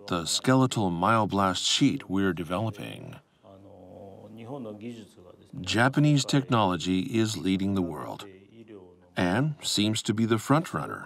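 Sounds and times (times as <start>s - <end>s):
man talking quietly: 0.0s - 11.0s
narration voice: 0.0s - 11.0s.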